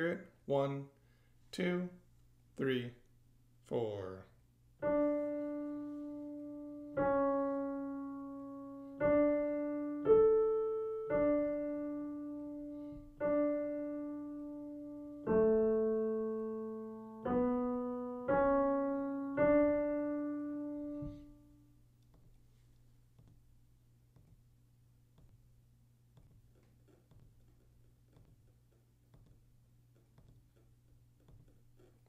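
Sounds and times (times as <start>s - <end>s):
slow piano melody: 4.8s - 21.9s.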